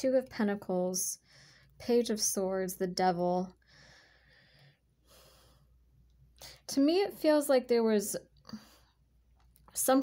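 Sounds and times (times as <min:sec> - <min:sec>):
woman breathing softly: 0:01.2 - 0:01.8, 0:03.6 - 0:06.7, 0:08.4 - 0:09.1.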